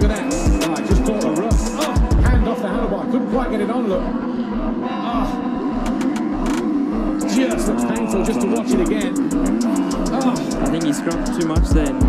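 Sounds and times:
background beat low thumps: 0:00.0 - 0:02.5, 0:05.6 - 0:12.0
dirt bike engine revving: 0:03.3 - 0:12.0.

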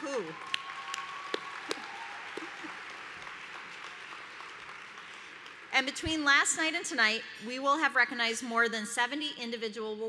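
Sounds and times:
audience applauding: 0:00.0 - 0:05.8.

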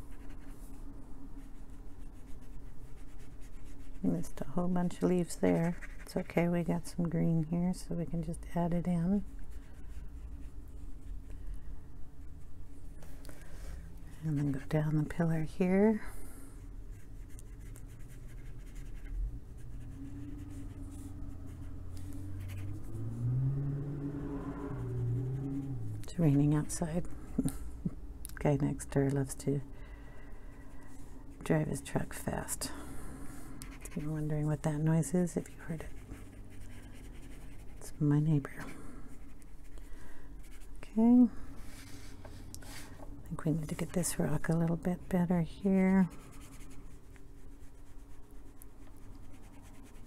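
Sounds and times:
scratchy brush strokes: 0:00.0 - 0:06.9, 0:16.6 - 0:27.5, 0:30.4 - 0:50.0
steady low hum: 0:00.0 - 0:50.0
truck engine driving by: 0:20.2 - 0:26.1.

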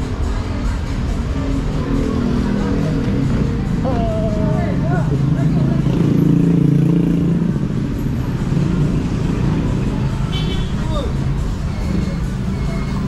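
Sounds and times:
vehicles passing close by: 0:00.0 - 0:13.0.

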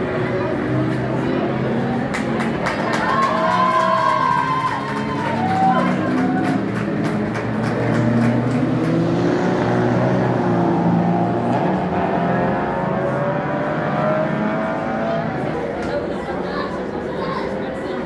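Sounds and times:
race car engines passing: 0:00.0 - 0:18.0.

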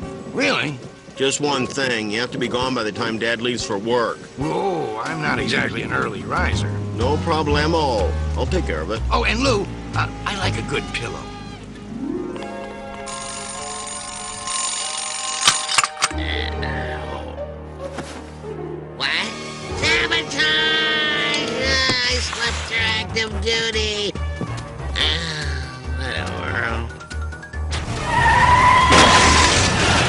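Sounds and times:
bell ringing: 0:13.0 - 0:16.2
cartoon tyres squealing: 0:27.8 - 0:30.0.

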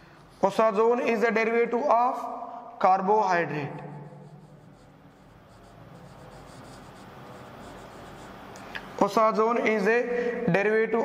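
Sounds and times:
marker writing on whiteboard: 0:03.8 - 0:08.5.

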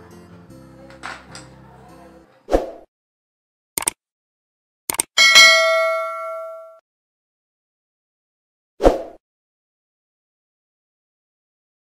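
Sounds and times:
double mouse click: 0:04.9 - 0:05.1
notification bell ding: 0:05.2 - 0:06.8.

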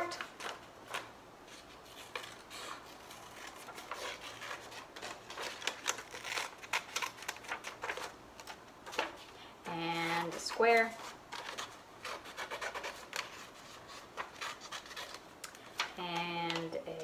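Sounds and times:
scissors snipping paper: 0:00.0 - 0:09.2, 0:10.0 - 0:17.0.

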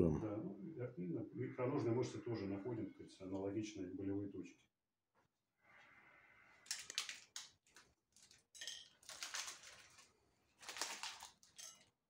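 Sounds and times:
crinkling plastic and paper packaging: 0:06.6 - 0:12.0.

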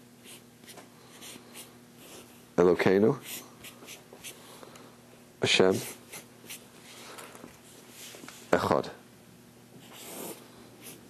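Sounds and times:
marker scratching on paper: 0:00.2 - 0:02.4, 0:03.2 - 0:04.4, 0:05.7 - 0:06.7, 0:09.8 - 0:11.0.

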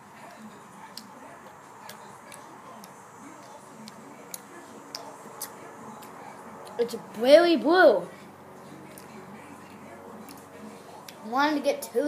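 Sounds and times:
low room noise: 0:00.0 - 0:12.0
wet chewing: 0:00.2 - 0:06.8
sharp mouth clicks: 0:01.9 - 0:06.8.

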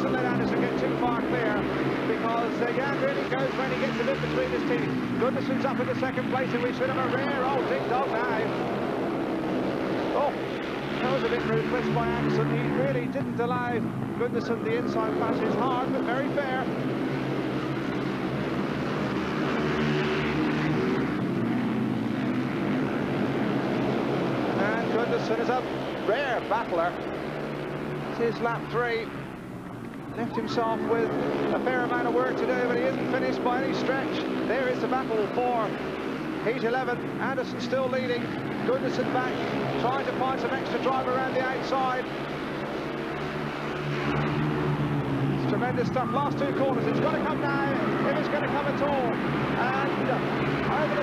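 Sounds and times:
motorbikes racing: 0:00.0 - 0:51.0.

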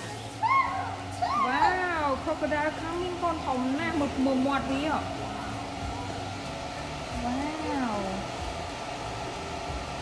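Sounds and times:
steady hum and hiss: 0:00.0 - 0:10.0.

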